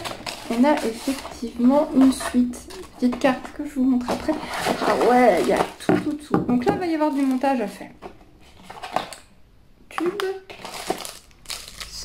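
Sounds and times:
cardboard and paper rustling: 0.0 - 7.8, 8.4 - 9.2, 10.5 - 12.0.

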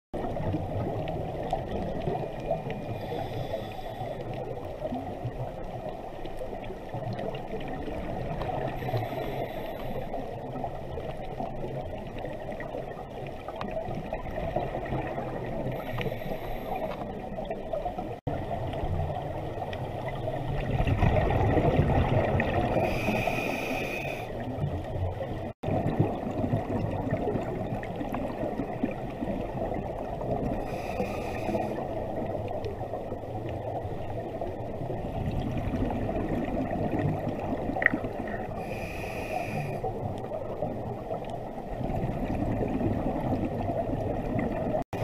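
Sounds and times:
underwater bubbling: 0.2 - 45.0
scuba regulator breathing hiss: 2.9 - 4.3, 8.8 - 10.2, 15.8 - 16.9, 22.7 - 24.4, 30.6 - 31.8, 38.6 - 39.9.

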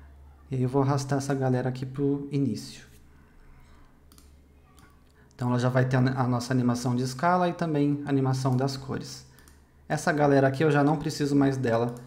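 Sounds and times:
faint computer mouse clicks: 4.1 - 5.3, 9.3 - 9.6.

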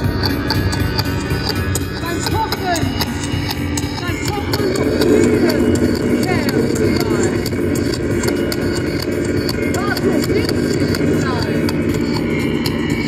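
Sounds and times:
irregular clicks: 0.0 - 13.0
low electronic drone: 0.0 - 13.0
voice-like gliding tones: 0.0 - 13.0.

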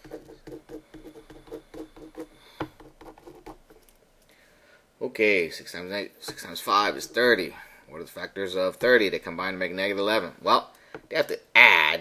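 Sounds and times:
marker scratching on whiteboard: 0.0 - 3.8, 8.7 - 9.2.

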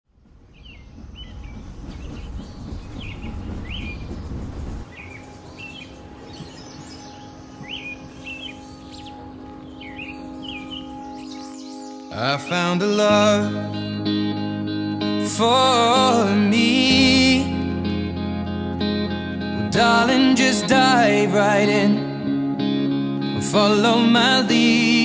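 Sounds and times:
low background rumble: 0.1 - 7.7
small birds chirping: 0.2 - 13.5
sustained low musical chord: 5.0 - 24.5.

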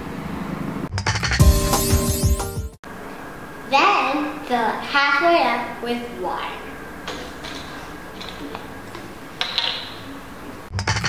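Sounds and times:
music: 0.9 - 2.8.

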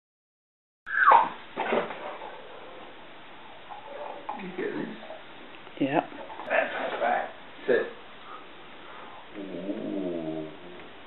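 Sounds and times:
dog whining: 0.9 - 1.4.

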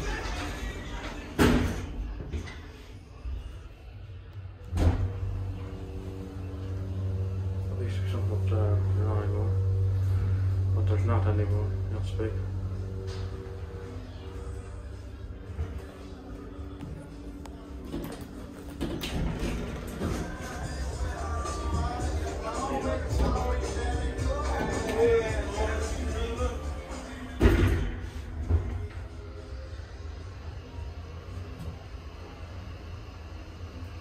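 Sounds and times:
lift drive humming: 0.0 - 34.0.

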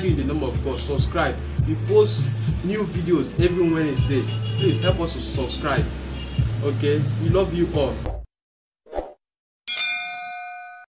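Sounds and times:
bell-like notification ding: 9.7 - 10.9.

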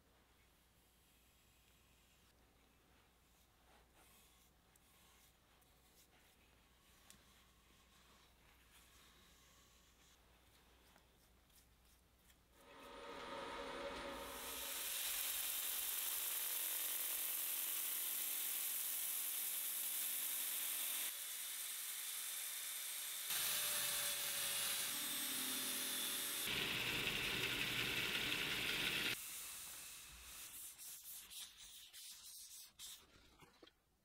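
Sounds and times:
power sander whirring: 25.2 - 29.2.

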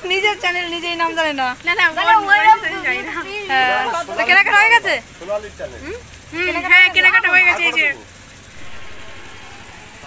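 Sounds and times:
motor engine running: 0.9 - 10.0.

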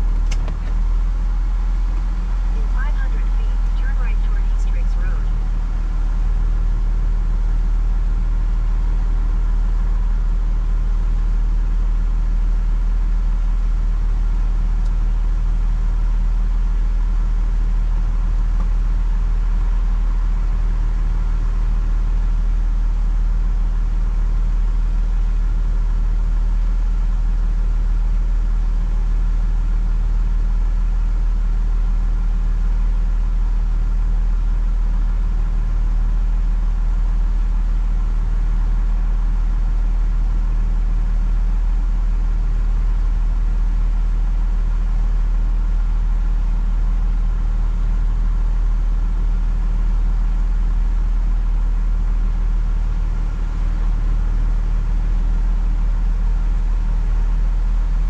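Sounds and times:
car engine idling: 0.0 - 58.0.

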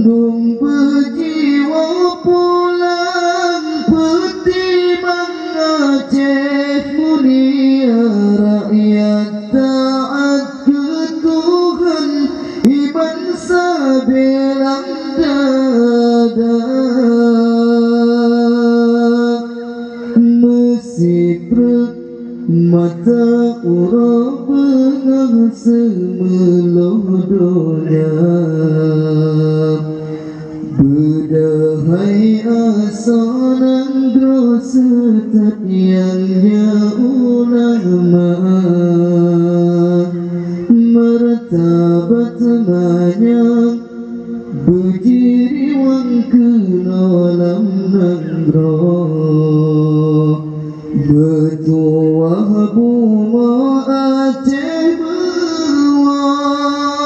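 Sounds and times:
man singing over loudspeakers: 0.0 - 57.0.

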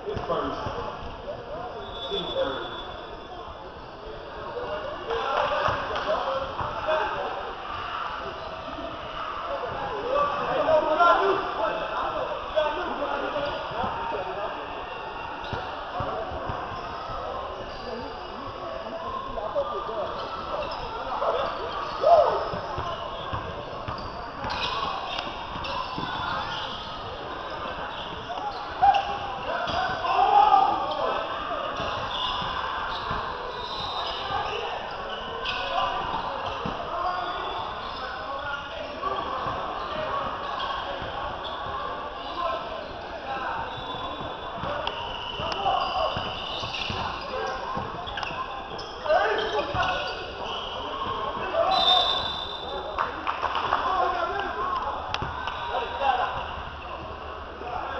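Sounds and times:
players and spectators voices: 0.0 - 57.9
basketball bouncing on court: 22.4 - 30.0, 43.6 - 51.2, 55.0 - 55.6.

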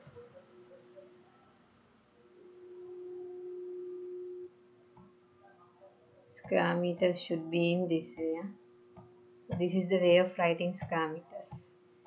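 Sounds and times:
steady single-pitched tone: 2.4 - 5.1.

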